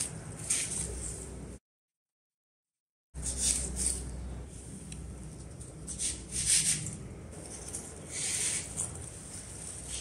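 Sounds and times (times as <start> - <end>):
artificial leaves rustling: 0.0 - 1.6, 3.2 - 10.0.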